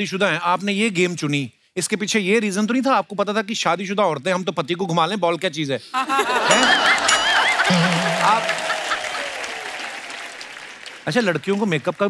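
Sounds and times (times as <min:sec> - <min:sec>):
audience laughing and applauding: 0:06.0 - 0:12.0.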